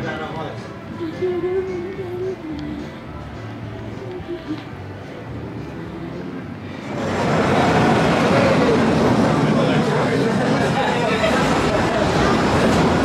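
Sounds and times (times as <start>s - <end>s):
faint music: 0.0s - 13.0s
roller coaster rolling on track: 6.6s - 13.0s.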